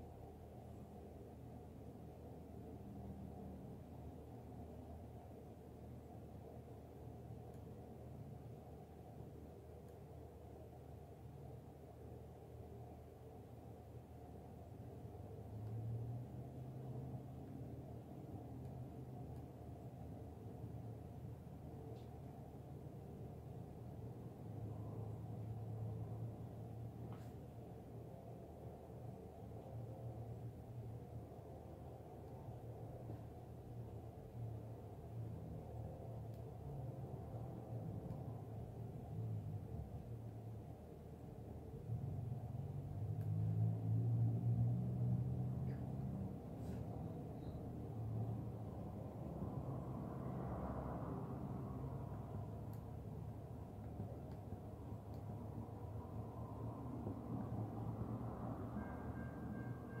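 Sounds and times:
low rumble of train: 0.0s - 60.0s.

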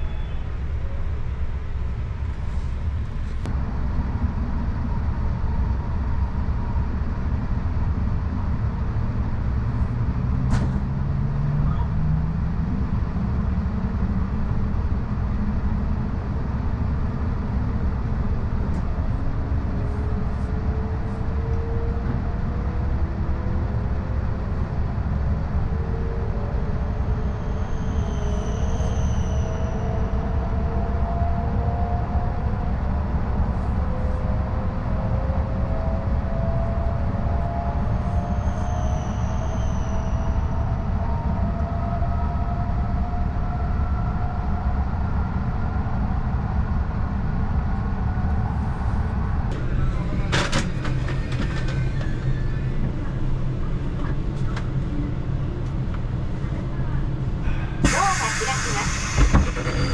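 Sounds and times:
train running rumble: 42.9s - 59.9s.

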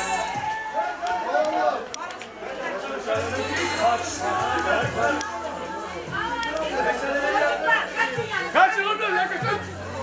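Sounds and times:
crowd chatter: 0.0s - 10.0s
sharp clicks: 6.4s - 6.7s.

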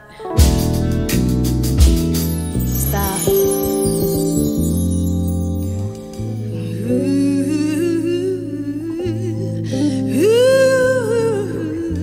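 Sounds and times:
electric keyboard chords: 0.0s - 8.8s
woman humming wordless melody: 6.6s - 12.0s.

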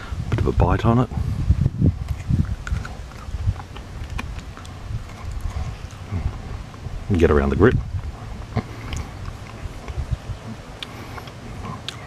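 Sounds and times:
person chewing: 2.0s - 6.8s, 8.2s - 12.0s.

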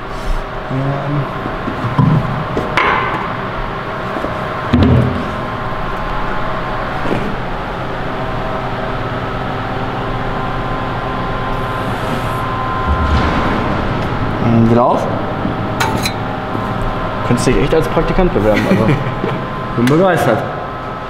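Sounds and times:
metal folding machine humming: 1.3s - 20.0s
metal clunk: 15.2s - 16.3s.

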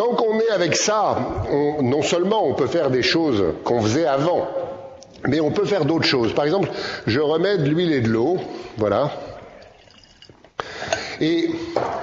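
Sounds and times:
faint liquid sounds: 8.6s - 11.3s.

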